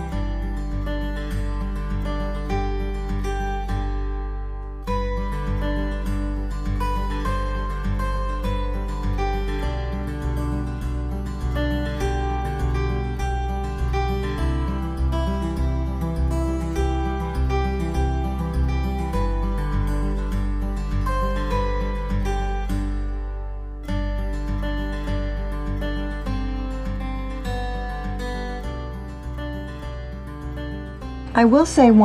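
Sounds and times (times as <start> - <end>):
plucked-string instrumental music: 0.0 - 32.0.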